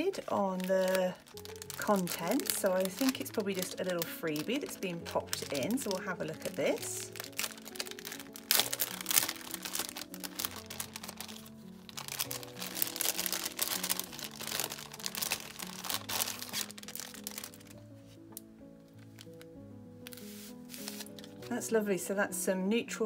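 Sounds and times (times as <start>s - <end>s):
plastic packaging crinkling: 0.0s - 21.5s
soft background music: 0.0s - 23.0s.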